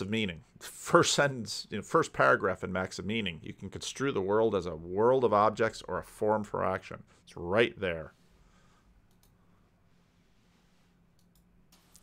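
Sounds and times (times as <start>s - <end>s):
computer mouse clicks: 9.0s - 9.4s, 11.1s - 12.0s.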